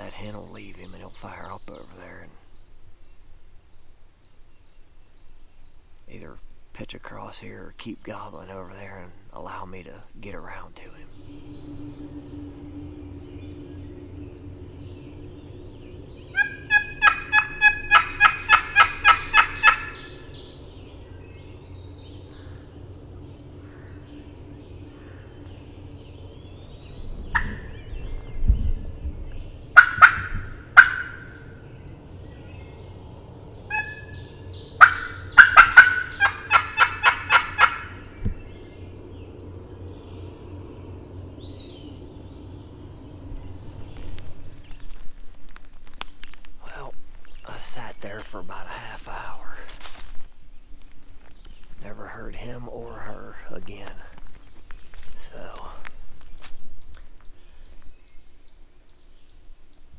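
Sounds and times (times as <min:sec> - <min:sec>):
turkey yelping: 0:16.3 - 0:20.2, 0:29.7 - 0:31.4, 0:33.7 - 0:38.0.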